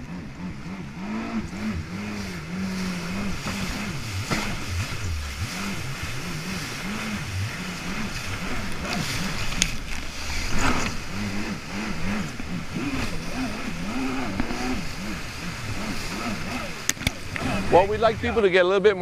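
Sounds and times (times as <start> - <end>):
jet ski engine revving: 0.0 - 19.0
water rushing and spray: 0.0 - 19.0
sharp slaps on water: 3.4 - 4.6, 16.8 - 17.6.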